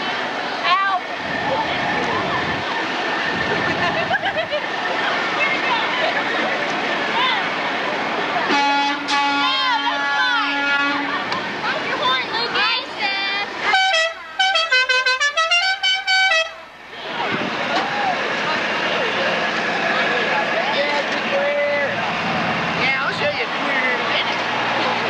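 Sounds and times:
crowd hubbub: 0.0s - 25.0s
people shouting: 8.4s - 11.3s
vehicle horn toots: 8.5s - 11.2s, 13.7s - 17.1s.

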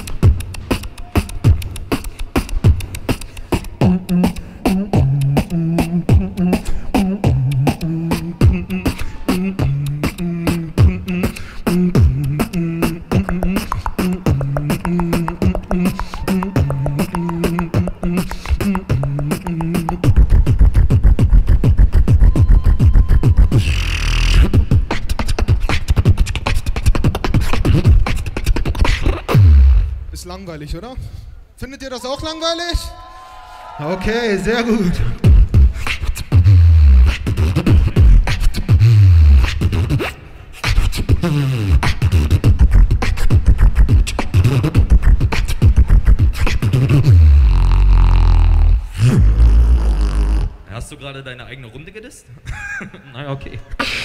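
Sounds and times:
beatboxing into a microphone: 0.0s - 31.4s, 34.0s - 50.7s.

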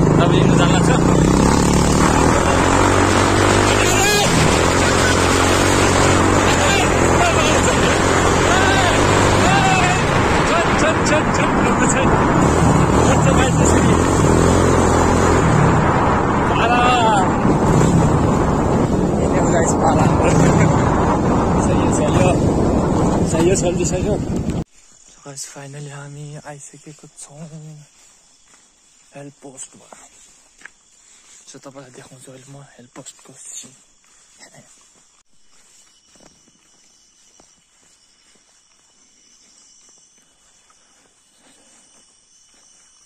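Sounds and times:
motorcycle engine running: 0.0s - 24.7s
wind noise on microphone: 9.1s - 24.7s.

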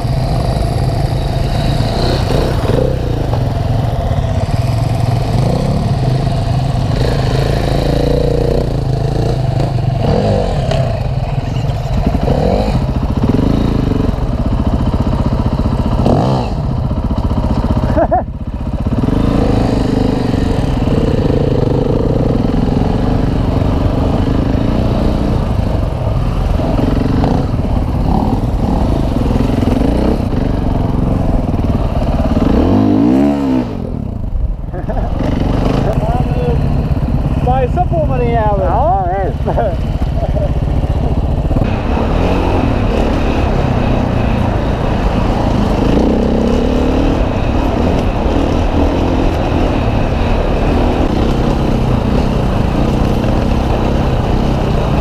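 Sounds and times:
motorcycle engines running: 0.0s - 55.0s
motorcycle throttle blips: 0.0s - 55.0s.

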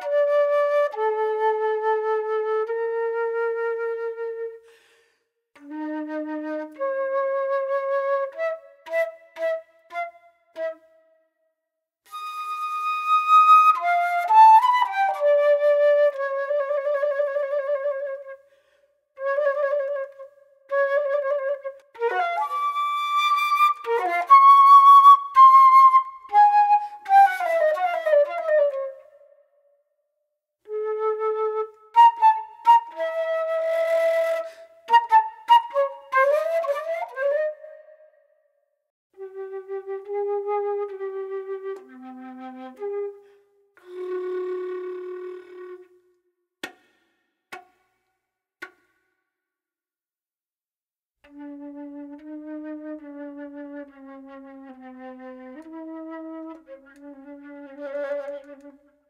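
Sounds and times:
solo flute playing: 0.0s - 4.8s, 5.6s - 11.2s, 12.1s - 18.4s, 19.2s - 29.6s, 30.6s - 38.4s, 39.1s - 46.3s, 51.2s - 59.0s.

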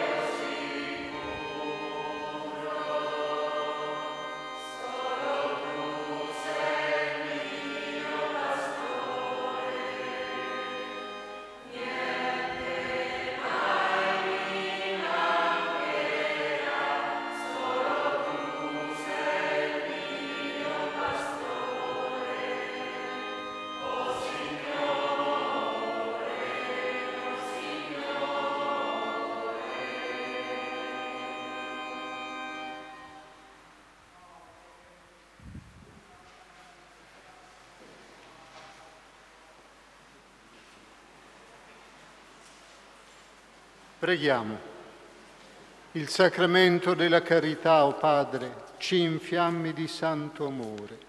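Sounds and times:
organ: 0.0s - 33.6s
choir singing a hymn: 0.0s - 33.7s, 46.0s - 51.0s.

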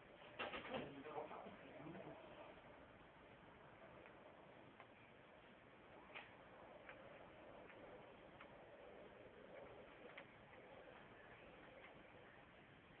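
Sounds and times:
faint background hiss: 0.0s - 13.0s
soft clicks: 4.0s - 5.0s, 6.1s - 12.4s.

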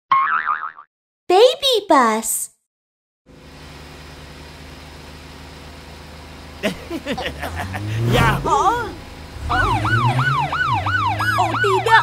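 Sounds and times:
high cartoon voice: 8.1s - 9.0s.

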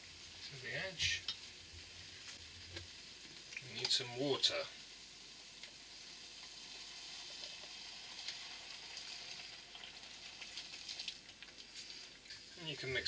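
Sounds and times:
food sizzling in a frying pan: 0.0s - 13.0s
water poured into pan: 6.4s - 12.0s.

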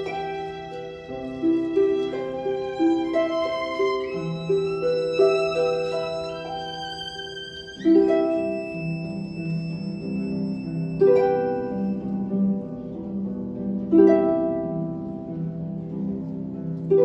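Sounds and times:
held string notes: 0.0s - 17.0s
harp chords plucked: 7.8s - 15.8s.

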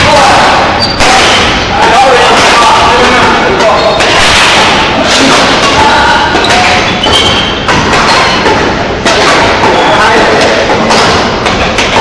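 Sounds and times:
din of voices: 0.0s - 7.3s
rackets hitting shuttlecock: 0.9s - 12.0s.

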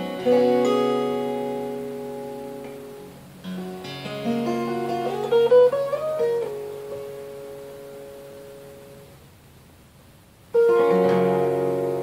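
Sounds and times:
acoustic guitar notes ringing: 0.0s - 9.3s, 10.5s - 12.0s.

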